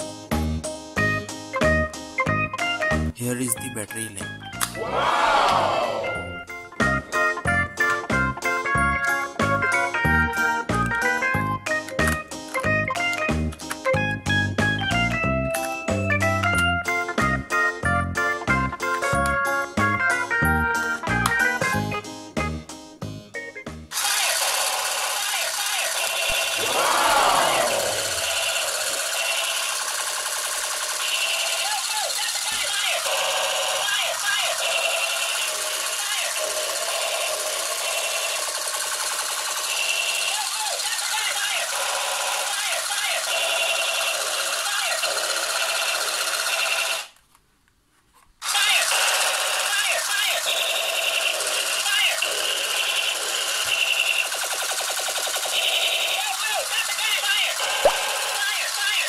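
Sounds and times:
toy gun machine-gun rattle: 0:23.9 - 0:26.7, 0:28.0 - 0:47.2, 0:48.4 - 0:59.0
voice-like samples: 0:26.6 - 0:28.3.

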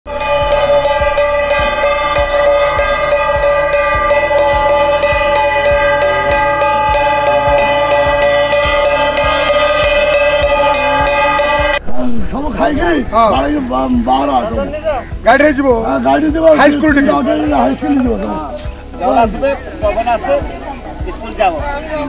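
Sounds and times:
metal gong beaten rhythmically: 0:00.1 - 0:14.7.

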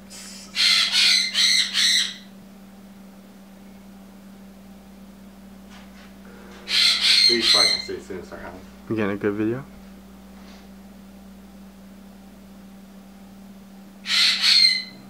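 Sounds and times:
steady low hum: 0:00.0 - 0:15.0
harsh bird squawks: 0:00.5 - 0:02.3, 0:06.5 - 0:08.2, 0:14.0 - 0:15.0.

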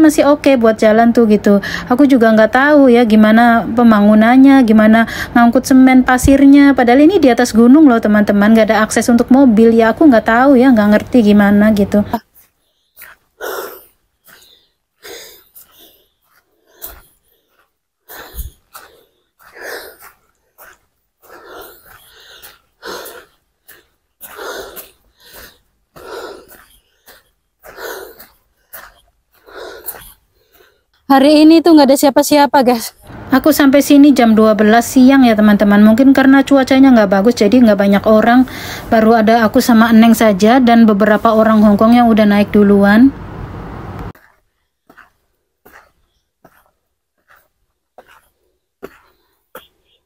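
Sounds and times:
person breathing hard: 0:01.6 - 0:01.9, 0:05.1 - 0:05.4, 0:12.4 - 0:31.0, 0:38.4 - 0:38.9
footsteps on stone steps: 0:10.7 - 0:30.7, 0:44.0 - 0:50.0.

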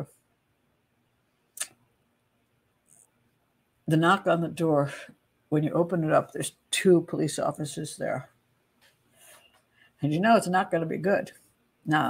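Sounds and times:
mouth click lip smack: 0:01.6 - 0:01.8.

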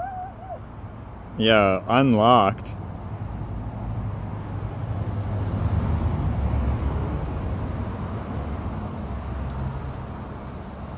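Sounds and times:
distant road traffic rumble: 0:00.0 - 0:10.9.

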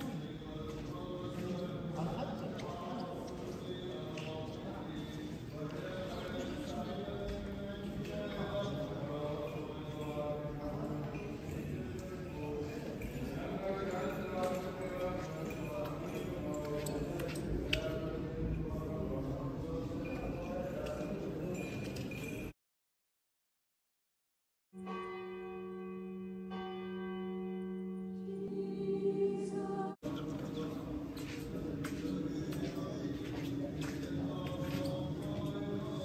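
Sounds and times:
murmur of voices: 0:00.0 - 0:22.5, 0:28.5 - 0:36.0
large bell ringing: 0:24.8 - 0:28.6
footsteps on stone floor: 0:30.1 - 0:36.0.

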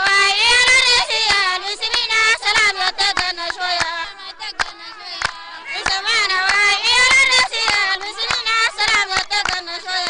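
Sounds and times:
sharp hand claps: 0:00.0 - 0:10.0
women singing: 0:00.0 - 0:10.0.

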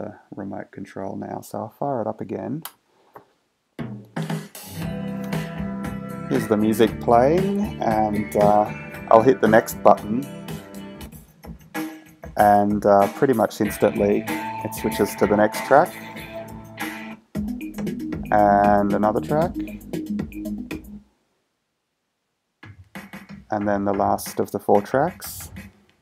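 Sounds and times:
guitar music through speaker: 0:04.7 - 0:11.1, 0:12.6 - 0:20.6.

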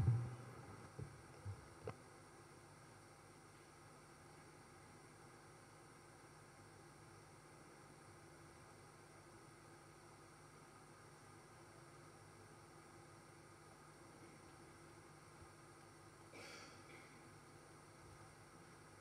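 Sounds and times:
low hum: 0:00.0 - 0:01.9
faint steady hiss: 0:00.0 - 0:19.0.

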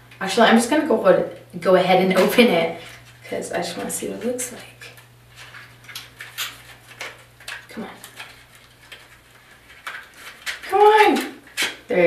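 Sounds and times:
low steady hum: 0:00.0 - 0:12.0
packaging clicks and crinkles: 0:04.8 - 0:11.9.

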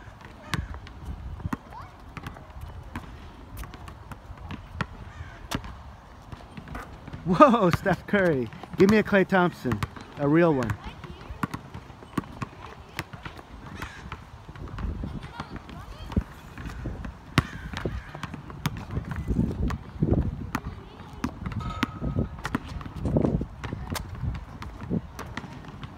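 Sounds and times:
basketball bouncing on asphalt: 0:00.0 - 0:25.9.

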